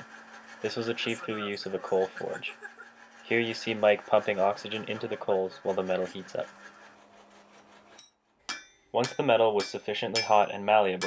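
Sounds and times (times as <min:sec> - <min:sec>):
hammer blow on hot steel: 0:08.5 - 0:11.0.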